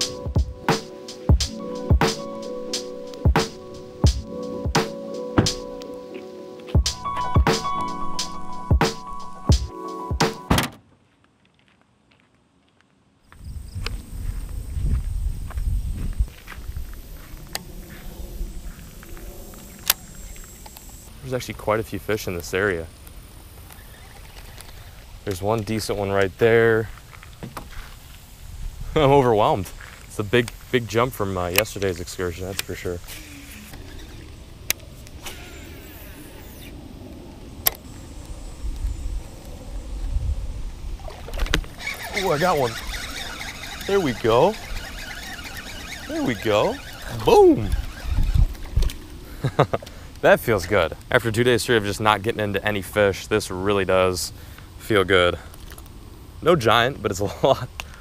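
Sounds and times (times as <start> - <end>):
rumbling and rustling on microphone: 13.3 - 22.6, 24.0 - 52.9
sharp reel clicks: 41.4 - 49.0.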